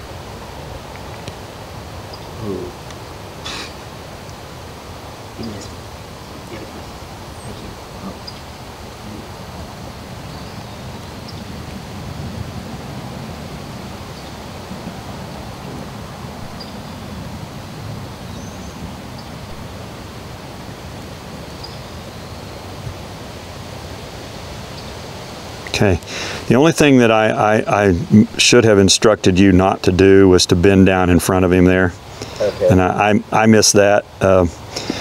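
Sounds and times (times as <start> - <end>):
low outdoor rumble: 0.0 - 35.0.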